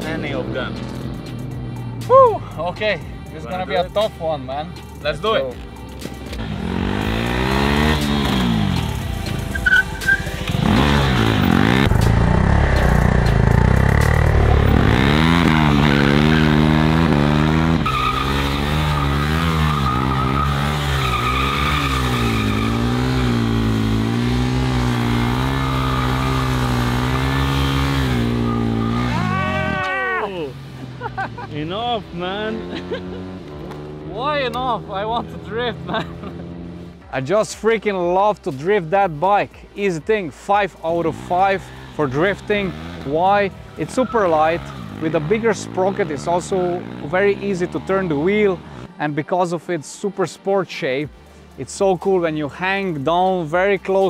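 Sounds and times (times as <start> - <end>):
motorcycle engine revving: 0.0 - 2.1, 5.6 - 29.7, 30.4 - 37.0, 40.9 - 49.0.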